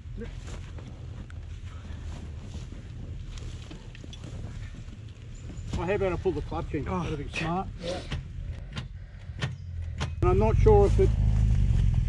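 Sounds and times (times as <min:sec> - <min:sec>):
scuffs and rustles: 0:00.0 - 0:08.1
low steady rumble: 0:00.0 - 0:12.0.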